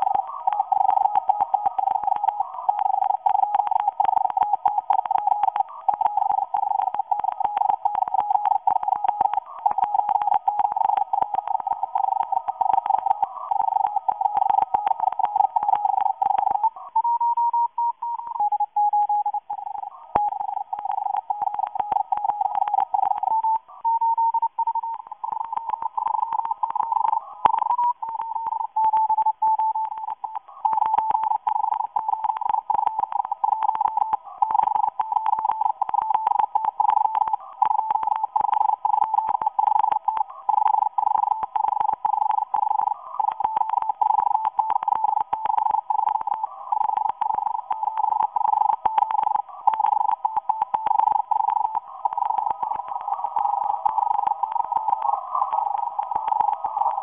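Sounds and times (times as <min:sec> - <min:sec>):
faint steady tone: 0:00.0 - 0:57.0.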